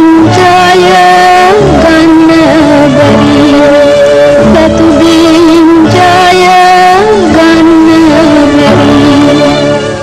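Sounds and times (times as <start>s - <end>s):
instrumental accompaniment: 0.0s - 10.0s
woman singing: 0.0s - 10.0s.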